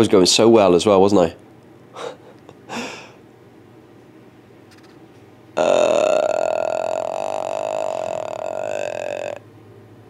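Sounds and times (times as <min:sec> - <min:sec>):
man belching vocal sound: 0:05.6 - 0:09.4.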